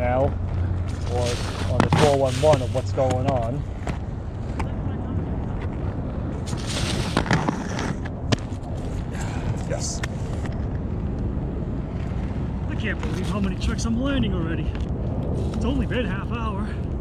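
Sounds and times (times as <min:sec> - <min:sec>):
wind rumble on microphone: 0:00.0 - 0:17.0
skates scraping on concrete: 0:00.9 - 0:04.7, 0:06.4 - 0:09.1
skates knocking on concrete: 0:01.6 - 0:04.8, 0:06.9 - 0:08.6.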